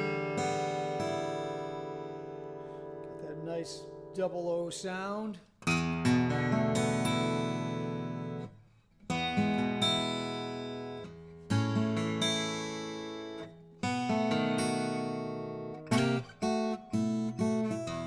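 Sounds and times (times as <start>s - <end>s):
acoustic guitar chords: 0.0s - 18.0s.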